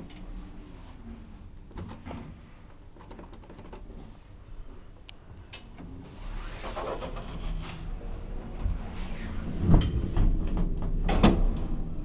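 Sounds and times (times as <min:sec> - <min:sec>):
lift doors sliding: 0:05.8 - 0:11.9.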